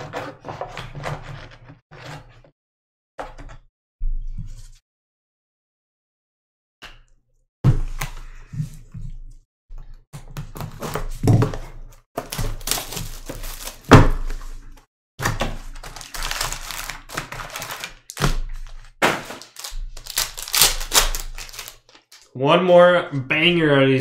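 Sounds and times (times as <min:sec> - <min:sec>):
foil pack crinkling: 0:12.2 - 0:13.9, 0:15.5 - 0:22.3.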